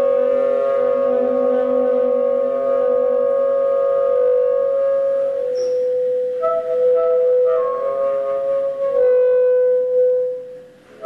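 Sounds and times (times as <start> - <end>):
saxophones sustained notes: 0.0 - 11.0.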